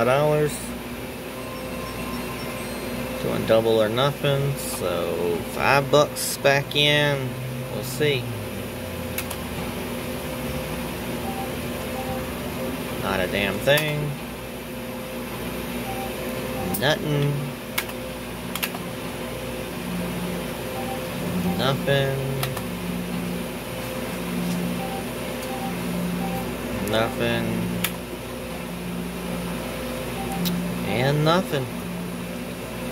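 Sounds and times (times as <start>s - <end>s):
fan-like background hum: 0.0s - 32.9s
low electronic game tones: 1.1s - 5.8s, 10.4s - 14.2s, 15.8s - 17.5s, 18.9s - 27.8s, 28.8s - 32.1s
short high beeps: 1.3s - 3.2s, 11.2s - 12.3s, 20.7s - 22.3s, 24.7s - 27.4s, 30.2s - 30.7s
faint short game beeps: 20.7s - 22.3s, 30.2s - 30.6s.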